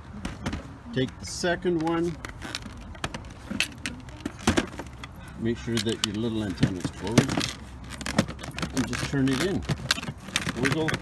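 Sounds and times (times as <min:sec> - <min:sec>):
plastic helmet clicks and rattles: 0:01.8 - 0:11.0.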